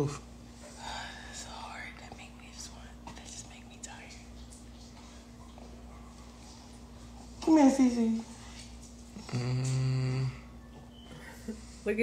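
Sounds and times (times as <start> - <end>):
steady low hum: 0.0 - 12.0
person whispering: 1.4 - 4.2.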